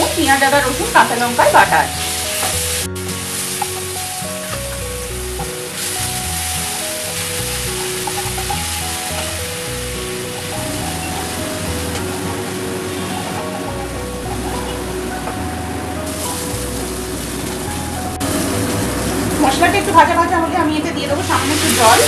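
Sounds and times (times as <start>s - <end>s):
paste sizzling in hot fat: 0.0s - 20.0s, 21.2s - 22.0s
background music of held notes: 0.0s - 22.0s.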